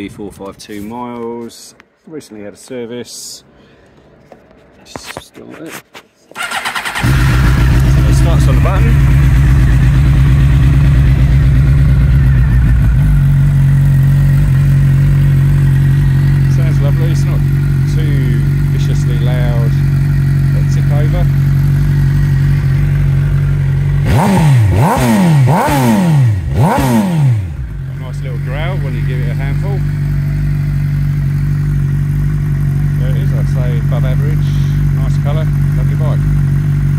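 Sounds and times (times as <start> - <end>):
motorcycle engine idling: 6.4 - 36.9
motorcycle throttle blips: 6.4 - 36.9.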